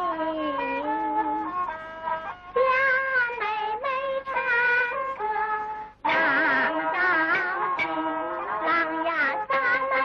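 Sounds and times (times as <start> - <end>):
instrumental accompaniment: 0.0 - 10.0
woman singing with vibrato: 0.0 - 10.0.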